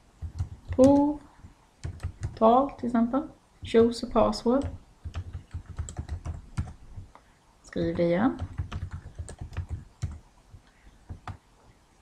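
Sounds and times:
typing on computer keyboard: 0:00.2 - 0:01.2, 0:01.8 - 0:02.5, 0:03.6 - 0:07.1, 0:08.4 - 0:10.2.

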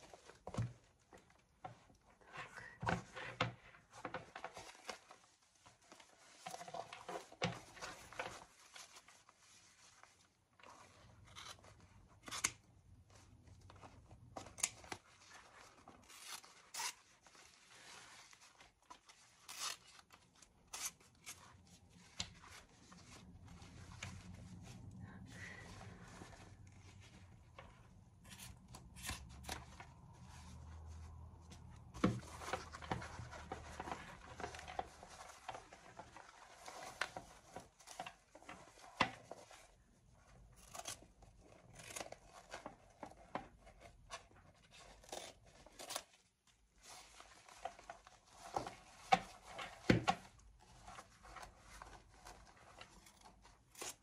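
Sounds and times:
fabric rustling: 0:00.0 - 0:20.6, 0:21.4 - 0:40.6.

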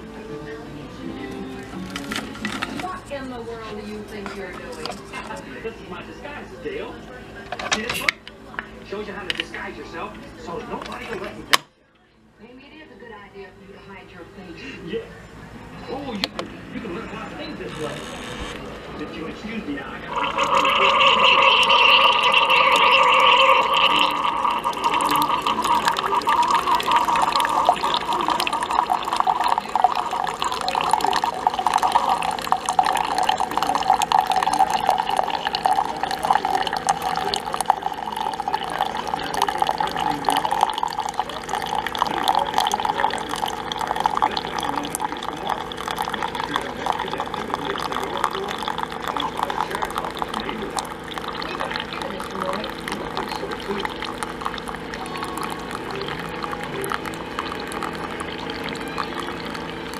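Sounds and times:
coffee pouring into mug: 0:01.5 - 0:11.6, 0:15.8 - 0:59.9
coffee brewer running: 0:15.8 - 0:59.9.

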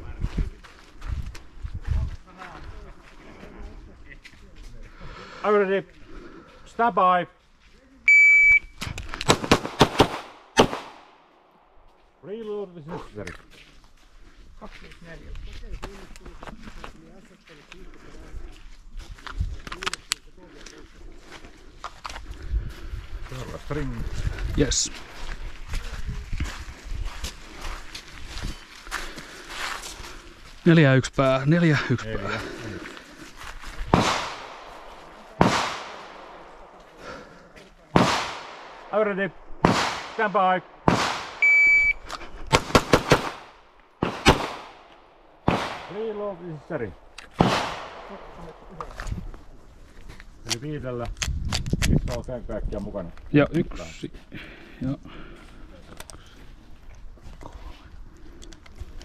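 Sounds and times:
pistol shots: 0:09.2 - 0:11.2, 0:33.9 - 0:36.6, 0:38.0 - 0:38.9, 0:39.6 - 0:41.5, 0:42.5 - 0:46.1, 0:47.4 - 0:48.4.

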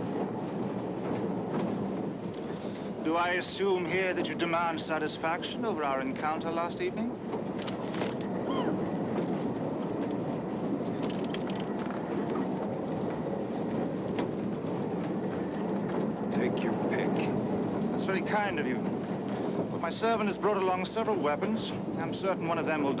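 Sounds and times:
railway carriage rumble: 0:00.0 - 0:23.0.

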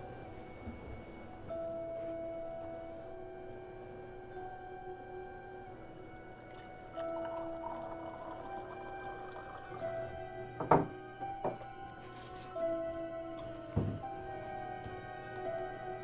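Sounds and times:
background music with held notes: 0:00.0 - 0:16.0
coffee pouring into a mug: 0:06.3 - 0:10.0
mug knocking on a desk: 0:10.6 - 0:11.7, 0:13.8 - 0:14.0.

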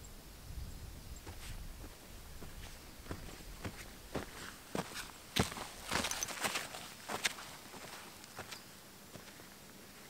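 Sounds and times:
bare footsteps on sand: 0:01.2 - 0:10.0.

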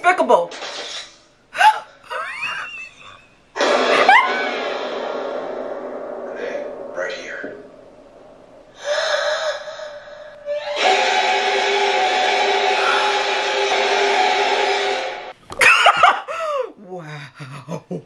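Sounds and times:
dissonant horror music chord: 0:10.4 - 0:15.3.

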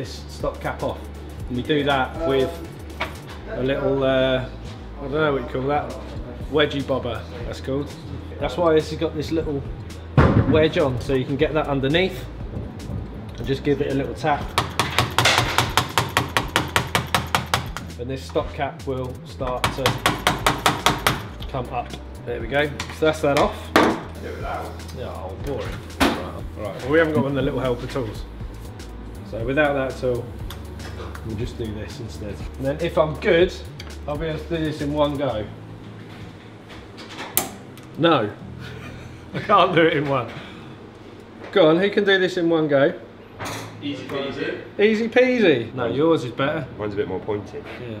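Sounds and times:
hammer tapping metal wedge: 0:14.5 - 0:17.9, 0:19.5 - 0:21.4.

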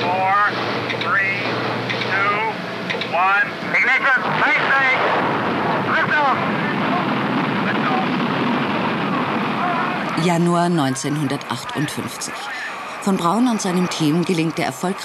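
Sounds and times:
rocket engine rushing: 0:00.0 - 0:15.0.

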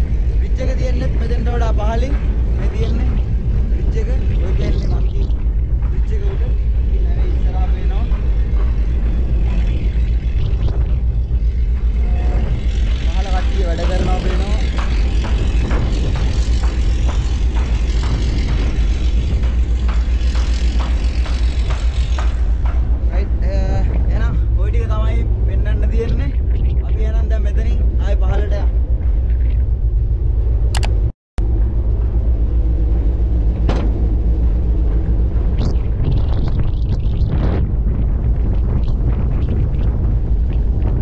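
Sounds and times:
ship engine exhaust rumble: 0:00.0 - 0:41.0
wind buffeting microphone: 0:00.0 - 0:41.0
man talking: 0:00.4 - 0:03.2, 0:03.8 - 0:05.3, 0:13.0 - 0:14.8, 0:23.1 - 0:28.7.

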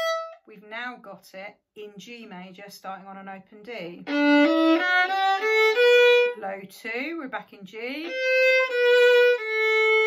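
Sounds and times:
bowed violin notes: 0:00.0 - 0:00.5, 0:04.0 - 0:06.6, 0:08.0 - 0:10.0.

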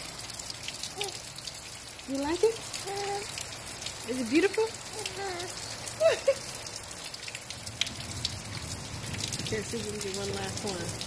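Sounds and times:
rain falling: 0:00.0 - 0:11.0
raindrops ticking on hard surfaces: 0:00.0 - 0:11.0.

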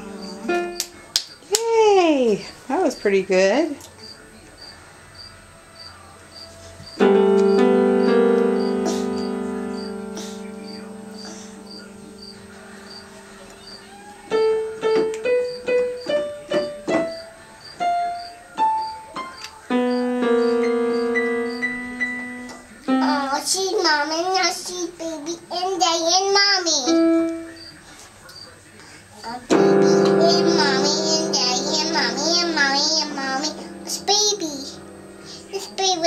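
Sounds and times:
electronic keyboard chords and notes: 0:00.0 - 0:01.0, 0:06.9 - 0:23.4, 0:29.5 - 0:36.0
child singing long notes: 0:29.6 - 0:36.0.

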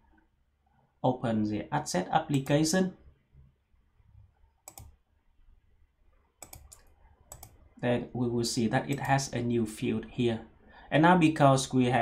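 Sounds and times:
computer mouse clicking: 0:04.6 - 0:05.0, 0:06.4 - 0:07.6.

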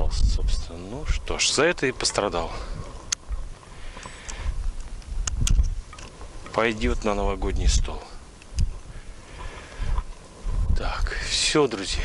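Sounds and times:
wind buffeting microphone: 0:00.0 - 0:12.0
sharp click: 0:05.2 - 0:06.2.

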